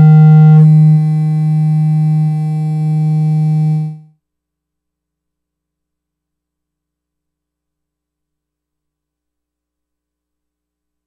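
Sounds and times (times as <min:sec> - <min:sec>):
church organ chord: 0:00.0 - 0:04.0.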